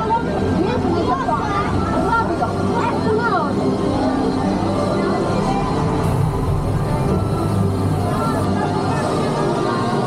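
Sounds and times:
ride vehicle rumbling: 6.0s - 8.6s
voices talking: 6.0s - 9.2s.

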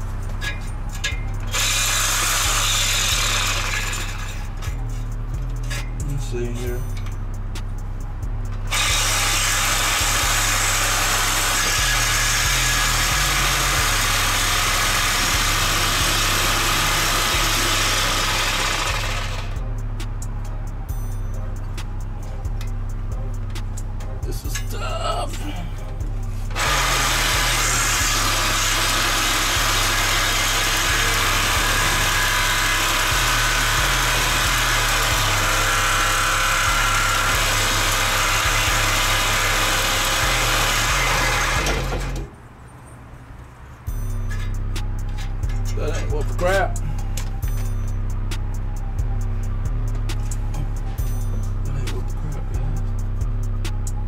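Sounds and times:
bass-heavy background music: 0.0s - 42.5s, 43.2s - 54.0s
electric saw cutting steel pipe: 0.4s - 4.9s, 8.7s - 19.7s, 26.5s - 42.3s.

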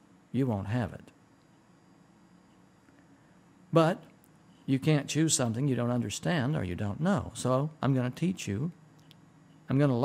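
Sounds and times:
tape hiss: 0.0s - 10.0s.

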